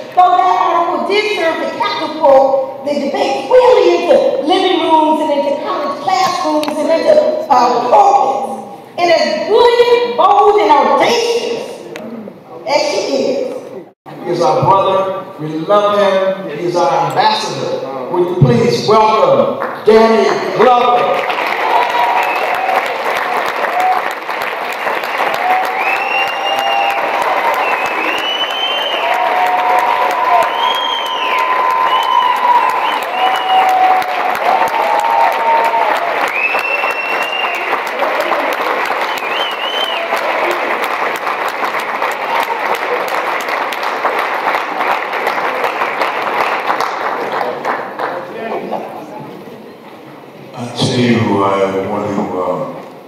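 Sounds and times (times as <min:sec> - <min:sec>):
audience applauding: 0:19.6 - 0:48.8
crowd cheering: 0:20.6 - 0:48.0.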